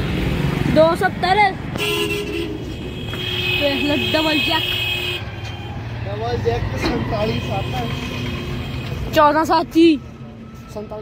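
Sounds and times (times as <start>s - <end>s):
vehicle engines rumbling: 0.0s - 11.0s
voices talking: 3.0s - 11.0s.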